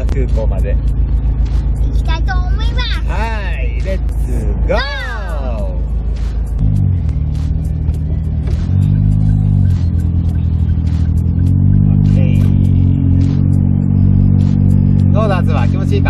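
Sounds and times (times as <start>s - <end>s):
small car engine revving: 6.2s - 16.0s.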